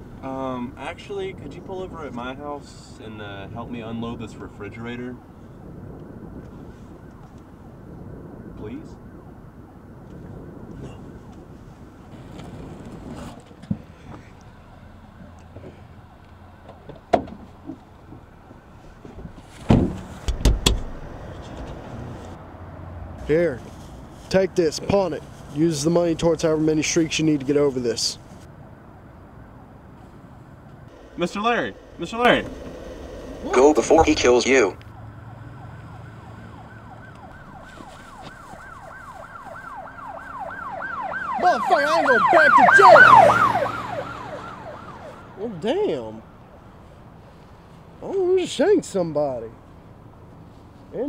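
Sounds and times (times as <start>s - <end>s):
car door thumps and knocks: 19.7s - 21.0s
car cabin hum: 30.9s - 34.8s
police siren yelping: 30.9s - 45.4s.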